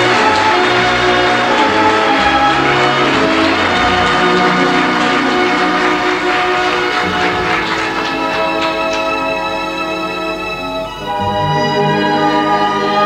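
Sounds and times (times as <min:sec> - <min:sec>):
orchestra playing slow chords: 0:00.0 - 0:13.0.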